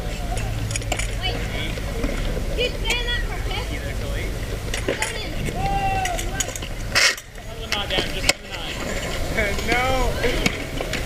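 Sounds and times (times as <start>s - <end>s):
skateboard clack: 0.0s - 11.0s
skateboard wheels rolling on concrete: 0.0s - 11.0s
voices calling out: 0.0s - 11.0s.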